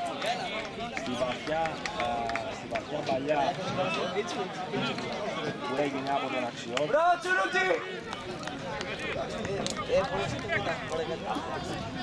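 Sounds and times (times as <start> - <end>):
voices calling out and talking: 0.0 - 12.0.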